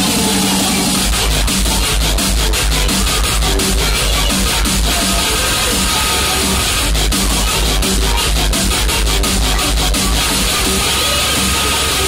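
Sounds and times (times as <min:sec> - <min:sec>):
electronic dance music: 0:00.0 - 0:12.0
heavy bass beat: 0:00.0 - 0:12.0.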